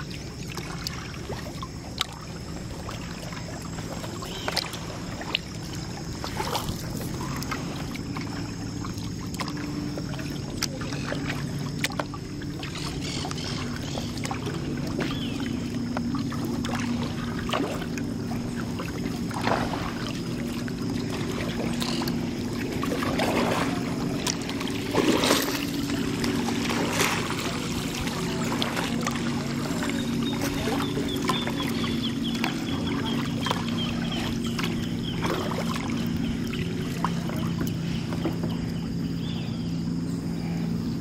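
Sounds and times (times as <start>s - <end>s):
sharp splashes and taps: 0.0s - 38.8s
paddle dipping and dripping water: 0.0s - 41.0s
steady low hum: 0.0s - 41.0s.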